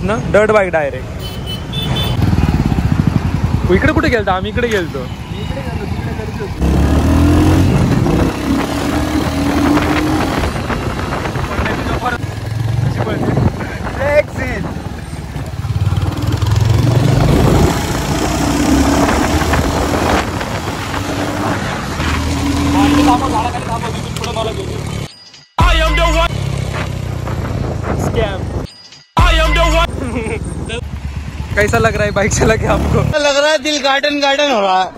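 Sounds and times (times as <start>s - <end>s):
road noise: 0.0s - 34.9s
motorcycle engine accelerating: 2.2s - 4.2s, 6.5s - 25.1s
wind noise: 7.1s - 23.6s, 26.7s - 28.7s.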